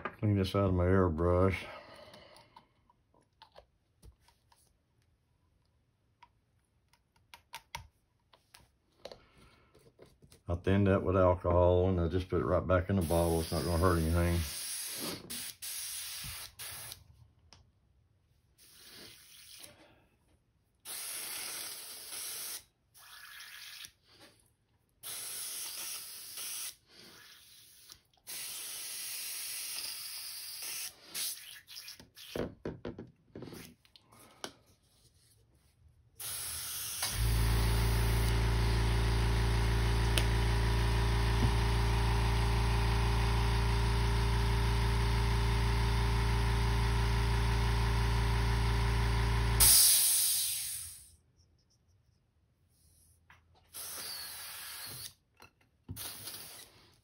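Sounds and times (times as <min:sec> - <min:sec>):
airbrush spraying bursts of hiss: 0:13.0 - 0:17.0, 0:49.6 - 0:51.1
compressor motor hum: 0:36.2 - 0:50.0.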